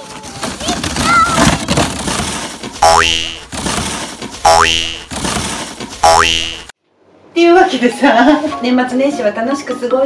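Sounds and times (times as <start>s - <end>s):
cartoon boing sound effect: 2.8s - 3.4s, 4.5s - 5.1s, 6.0s - 6.7s.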